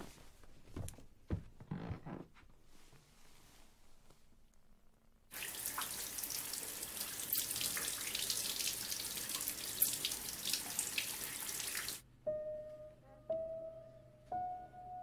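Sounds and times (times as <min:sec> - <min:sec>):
held musical note: 0:12.1 - 0:15.0.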